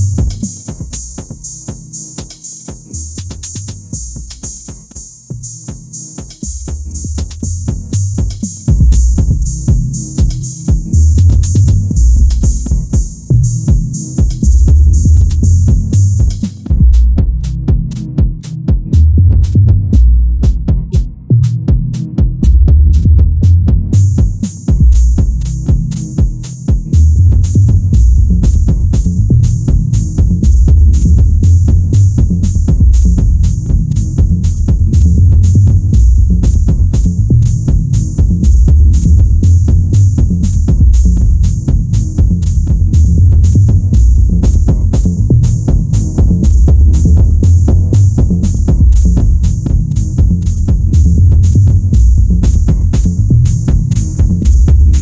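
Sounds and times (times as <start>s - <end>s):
deep tech house music: 0.0s - 55.0s
fast hi-hat rhythm: 0.0s - 55.0s
heavy bass line: 0.0s - 55.0s
kick drum: 0.0s - 55.0s.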